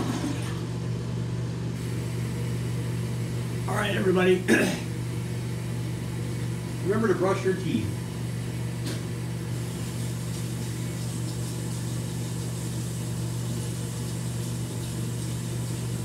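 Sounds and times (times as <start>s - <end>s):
low machine hum: 0.0s - 16.0s.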